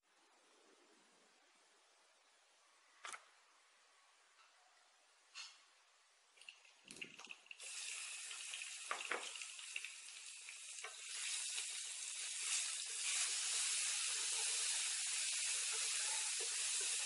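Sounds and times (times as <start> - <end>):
paste sizzling in hot oil: 7.6 - 17.0.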